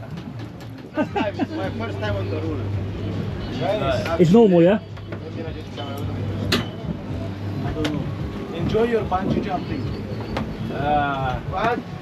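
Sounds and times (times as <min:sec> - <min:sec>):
boat engine humming: 0:00.0 - 0:12.0.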